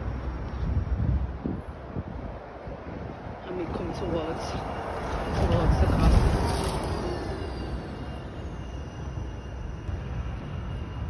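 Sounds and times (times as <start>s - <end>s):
bus passing by rumble: 0.0s - 11.0s
faint whine: 4.4s - 11.0s.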